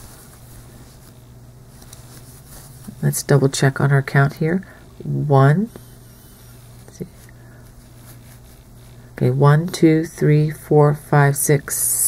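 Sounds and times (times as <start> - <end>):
yarn rustling with crochet hook: 0.0 - 3.4, 5.4 - 10.0
steady low hum: 0.0 - 12.0.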